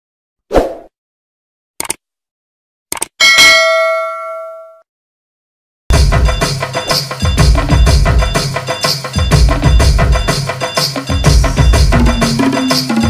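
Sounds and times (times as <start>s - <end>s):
quick clicks: 1.8s - 2.0s, 2.9s - 3.2s
bell ding: 3.2s - 4.8s, 6.4s - 13.0s
drum-led music: 5.9s - 13.0s.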